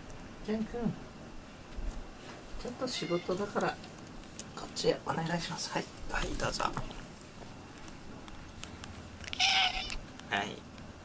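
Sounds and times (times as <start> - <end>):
cat meowing: 2.9 - 3.6, 9.3 - 10.0.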